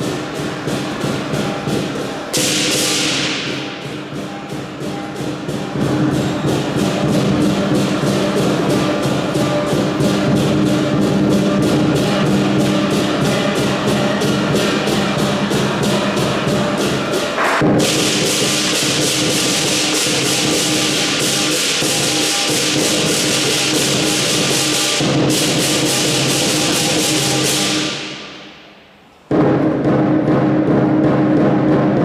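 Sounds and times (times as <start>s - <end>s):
gong ringing: 0.0s - 28.6s
big drum beat: 0.0s - 32.0s
cymbals crashing: 0.0s - 32.0s.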